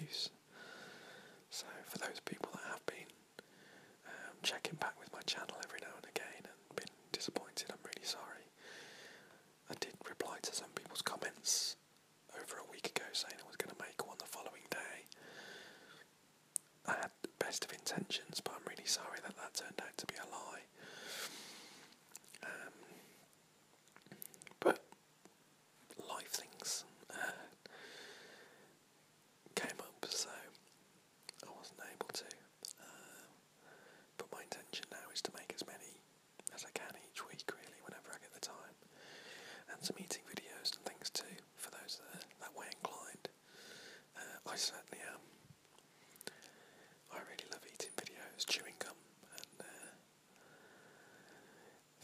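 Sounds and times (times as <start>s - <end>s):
man whispering: 0.0s - 0.4s, 1.5s - 8.6s, 9.6s - 15.2s, 16.8s - 21.5s, 22.2s - 23.2s, 24.1s - 25.0s, 25.9s - 27.7s, 29.5s - 30.7s, 31.3s - 38.8s, 39.6s - 43.4s, 44.1s - 45.4s, 46.2s - 50.0s.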